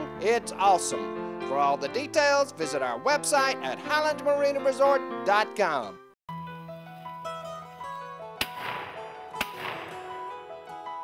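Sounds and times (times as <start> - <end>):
background music: 0.0 - 11.0
shotgun shot: 8.4 - 10.2.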